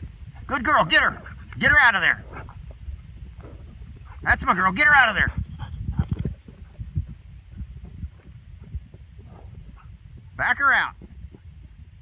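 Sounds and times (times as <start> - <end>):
horse hooves thudding on ground: 0.0 - 12.0.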